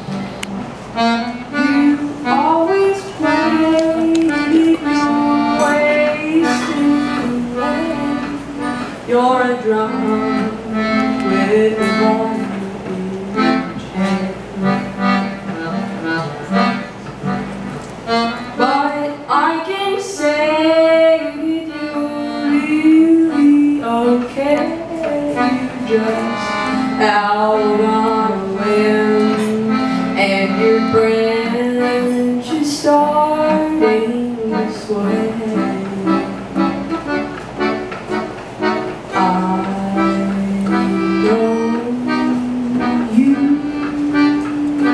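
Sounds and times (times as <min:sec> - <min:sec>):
accordion playing rhythmic chords: 0:00.0 - 0:44.9
woman singing: 0:01.6 - 0:15.0, 0:18.6 - 0:36.8, 0:39.1 - 0:44.9.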